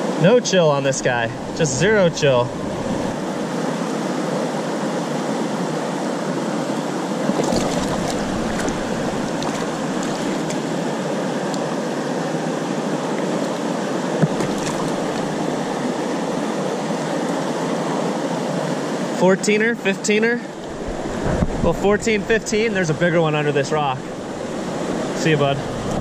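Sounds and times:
river rapids rushing: 0:07.1 - 0:17.2, 0:22.1 - 0:26.0.

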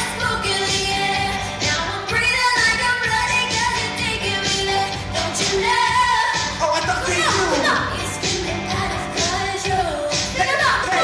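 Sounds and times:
dance beat backing track: 0:00.0 - 0:11.0
woman singing: 0:00.0 - 0:11.0.

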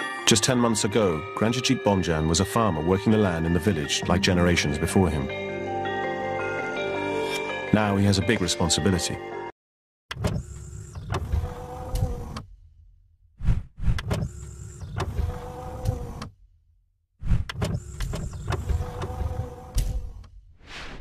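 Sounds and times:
mechanical whirring and sliding: 0:10.1 - 0:12.6, 0:13.4 - 0:16.4, 0:17.2 - 0:21.0.

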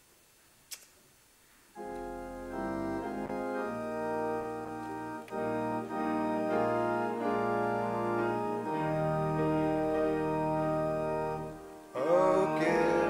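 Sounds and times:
organ playing hymn chords: 0:01.8 - 0:13.0.

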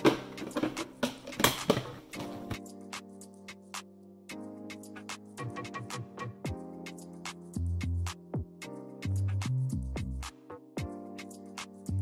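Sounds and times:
objects knocking and clattering: 0:00.0 - 0:02.6.

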